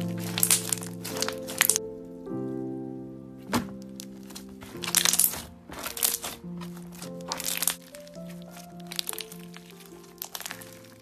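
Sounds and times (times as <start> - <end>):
slime crackling and popping: 0.0 - 1.8, 3.8 - 11.0
soft background music: 0.0 - 11.0.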